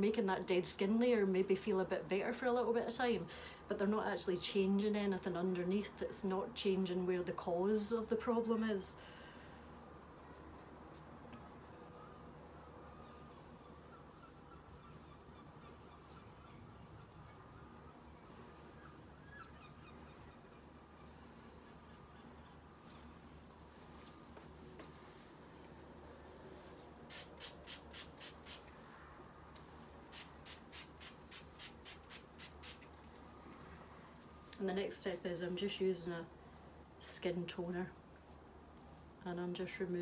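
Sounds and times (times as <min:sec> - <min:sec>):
low steady hum: 0:00.0 - 0:40.0
faint quick swishing strokes: 0:26.4 - 0:29.0.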